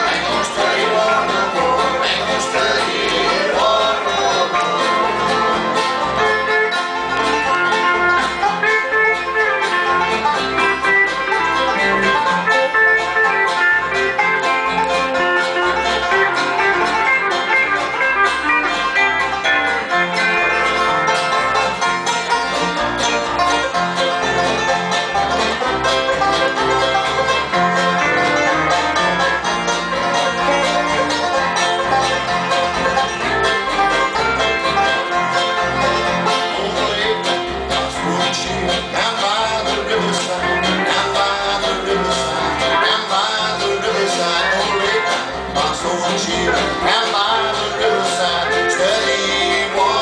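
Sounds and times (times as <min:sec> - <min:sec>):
acoustic guitar: 0:00.0 - 0:50.0
picked banjo notes: 0:00.0 - 0:50.0
steel guitar: 0:00.0 - 0:50.0.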